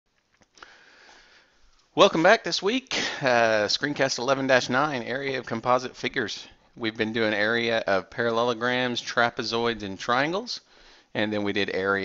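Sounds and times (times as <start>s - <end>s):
faint clicks: 0.1s - 0.8s
man breathing in through nose: 0.6s - 1.6s, 10.7s - 11.1s
man speaking: 1.9s - 12.0s.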